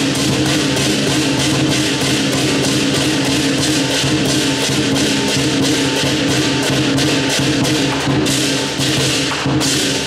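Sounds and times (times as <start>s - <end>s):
big drum beating: 0.0s - 10.0s
cymbals clashing: 0.0s - 10.0s.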